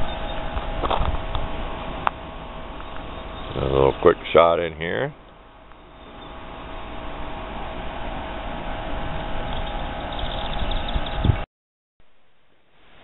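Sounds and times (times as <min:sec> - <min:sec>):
steady hum: 0:00.0 - 0:11.4.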